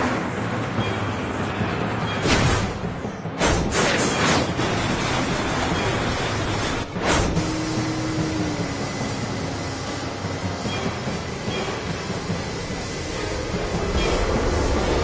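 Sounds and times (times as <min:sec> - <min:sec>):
vehicle rumbling: 0:00.0 - 0:15.0.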